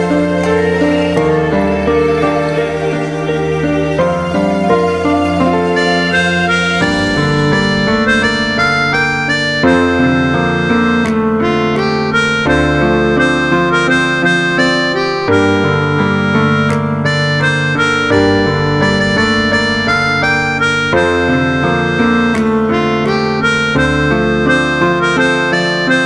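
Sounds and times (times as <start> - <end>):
harmonica melody: 0.0 - 26.0
piano backing chords: 0.0 - 26.0.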